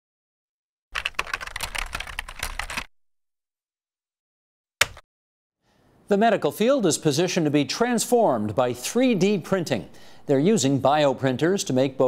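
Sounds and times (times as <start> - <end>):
fast clatter of typing clicks: 1.0 - 2.9.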